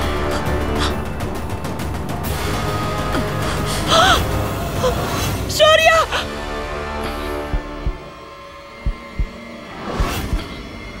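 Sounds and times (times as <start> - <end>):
heartbeat thump: 7.4 - 8.1, 8.8 - 9.4.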